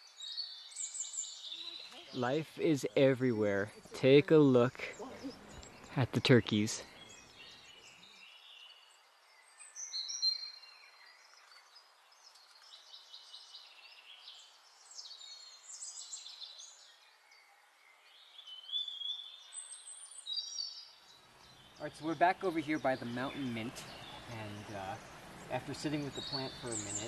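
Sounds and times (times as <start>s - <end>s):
birds chirping and trilling: 0.0s - 27.0s.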